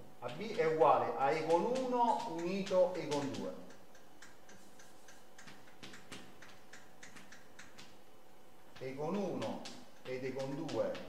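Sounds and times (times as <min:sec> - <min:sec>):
chalk tapping and scratching: 0:00.4 - 0:08.0, 0:08.7 - 0:11.0.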